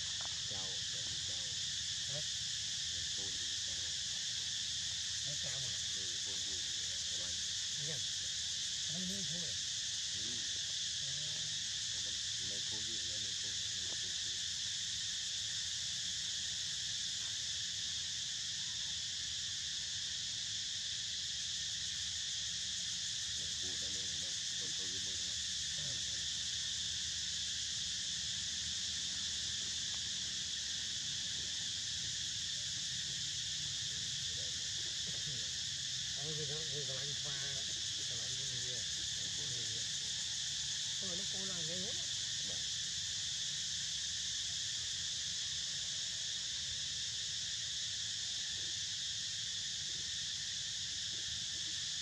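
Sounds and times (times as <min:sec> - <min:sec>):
insects chorus: 0:00.0 - 0:52.0
faint voices: 0:00.2 - 0:02.2, 0:05.3 - 0:08.0, 0:23.4 - 0:26.2, 0:33.9 - 0:35.5, 0:36.2 - 0:40.2.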